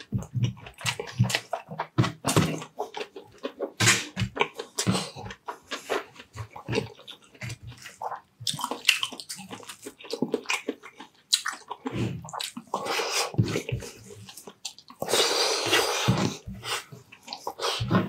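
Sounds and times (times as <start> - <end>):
crunching of fried food: 0.0 - 12.8
wet chewing: 0.0 - 18.0.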